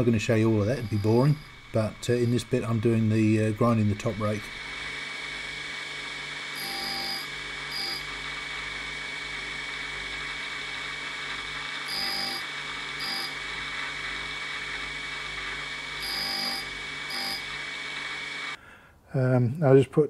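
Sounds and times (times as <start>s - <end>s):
tool bit grinding on wheel: 0.0s - 9.5s, 10.2s - 18.6s
grinder running with steady whine: 0.0s - 18.6s.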